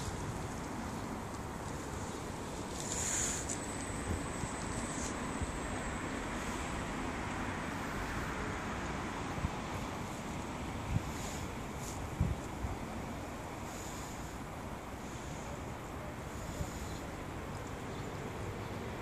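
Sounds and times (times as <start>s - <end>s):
city traffic: 0.0s - 19.0s
wind on microphone: 10.7s - 13.0s.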